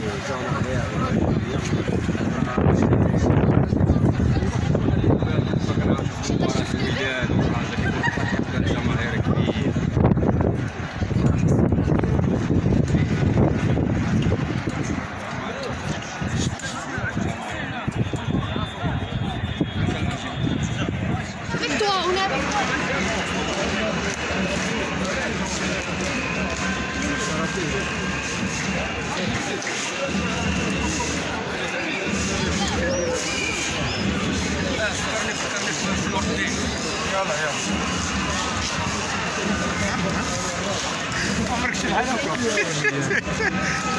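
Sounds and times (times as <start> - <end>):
crowd talking and calling out: 0.0 - 43.9.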